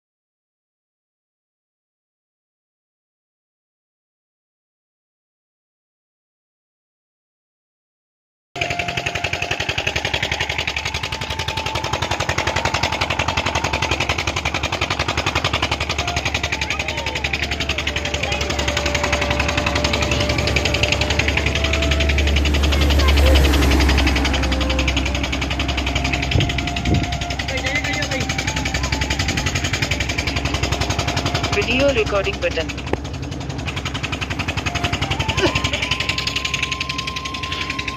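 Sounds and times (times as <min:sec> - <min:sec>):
pump engine chugging: 0:08.6 - 0:37.9.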